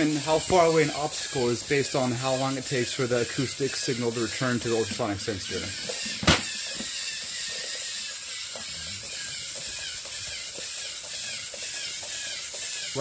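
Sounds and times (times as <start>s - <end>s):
motors and gears whirring: 0.0s - 13.0s.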